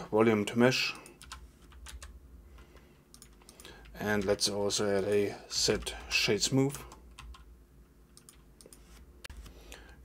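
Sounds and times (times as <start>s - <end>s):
computer keyboard keystrokes: 1.0s - 2.2s, 3.1s - 4.4s, 6.7s - 7.5s, 8.1s - 9.5s.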